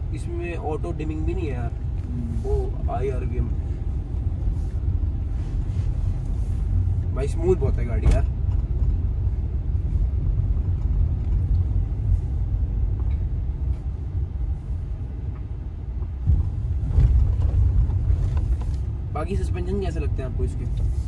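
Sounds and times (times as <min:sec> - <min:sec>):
car engine and road rumble: 0:00.0 - 0:21.0.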